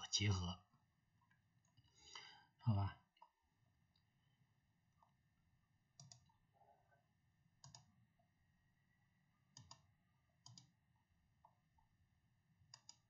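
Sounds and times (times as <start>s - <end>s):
faint computer mouse clicks: 6.0s - 6.4s, 7.6s - 7.9s, 9.6s - 9.8s, 10.4s - 10.7s, 12.7s - 13.0s.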